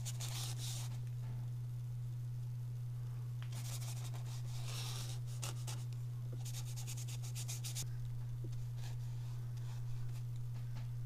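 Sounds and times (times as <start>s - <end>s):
paintbrush brushing on paper: 0.0s - 1.0s, 3.5s - 5.8s, 6.4s - 7.8s
steady low hum: 0.0s - 11.0s.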